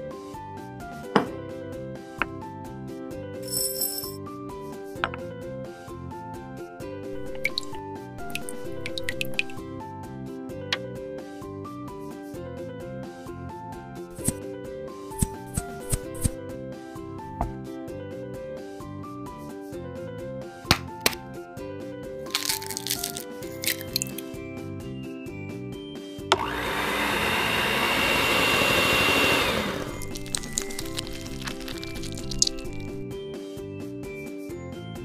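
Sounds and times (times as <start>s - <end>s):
background music: 0.0s - 35.0s
egg shell cracking click: 7.2s - 9.6s, 22.3s - 24.2s, 30.0s - 33.0s
egg shell crackling: 7.2s - 9.6s, 22.3s - 24.3s, 29.8s - 33.0s
high dripping plinks: 7.2s - 9.6s.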